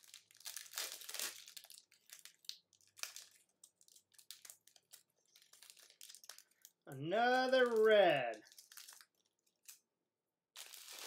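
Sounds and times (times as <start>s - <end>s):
foil wrapper tearing and crinkling: 0.0s - 6.8s, 7.6s - 9.8s, 10.6s - 11.0s.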